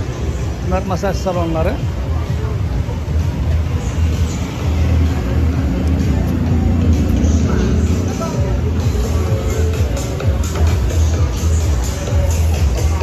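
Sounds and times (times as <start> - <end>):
background music: 0.0 - 13.0
car engine rumbling: 0.0 - 13.0
people's voices: 0.0 - 13.0.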